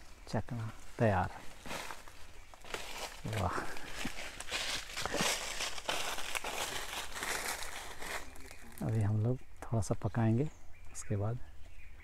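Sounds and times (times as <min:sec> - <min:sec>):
leaves crinkling and rustling: 0:00.0 - 0:09.3.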